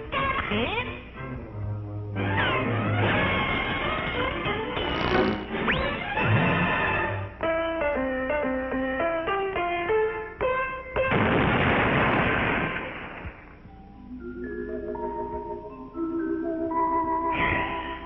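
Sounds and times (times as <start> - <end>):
loud explosion: 11.1 - 13.4.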